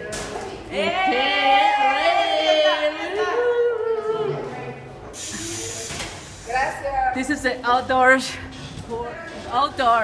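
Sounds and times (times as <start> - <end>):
steady hiss: 5.2 - 6.9.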